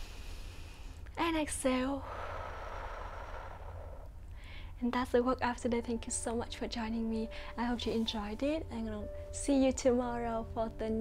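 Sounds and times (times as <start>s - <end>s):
woman exhaling slowly: 2.0s - 4.8s.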